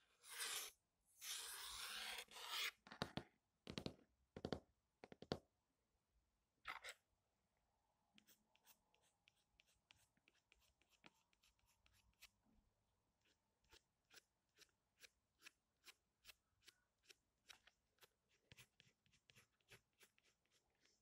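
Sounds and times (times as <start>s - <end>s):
pencil scratching on paper: 0.2s - 2.8s, 8.2s - 12.3s, 13.2s - 21.0s.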